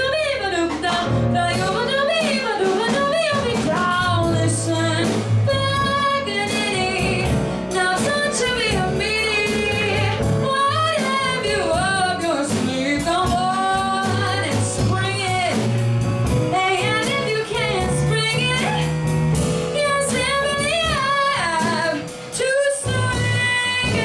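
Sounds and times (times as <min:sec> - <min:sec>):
drums: 0:00.0 - 0:24.0
stage piano: 0:00.0 - 0:24.0
upright double bass: 0:00.0 - 0:24.0.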